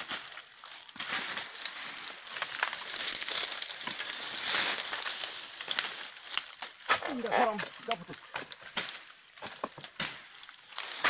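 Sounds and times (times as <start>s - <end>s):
dry fronds crackling and crunching: 0.0s - 11.0s.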